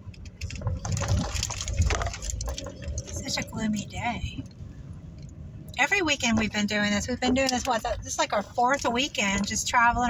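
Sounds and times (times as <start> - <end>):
car tyres on wet road: 0.0 - 10.0.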